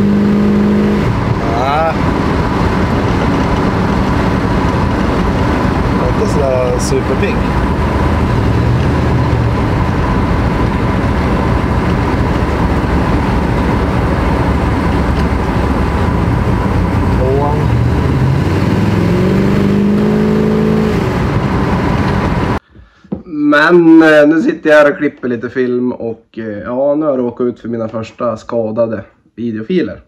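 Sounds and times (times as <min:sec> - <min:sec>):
road noise: 0:00.0 - 0:22.6
rough running car engine: 0:00.0 - 0:22.6.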